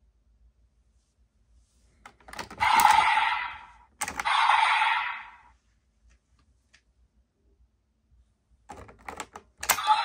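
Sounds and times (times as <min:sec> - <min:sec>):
electronic toy sound effect: 0:02.6 - 0:05.5, 0:09.6 - 0:10.0.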